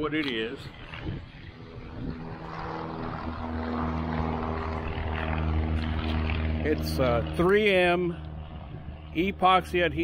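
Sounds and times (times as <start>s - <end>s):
light aircraft engine and propeller: 0.0s - 10.0s.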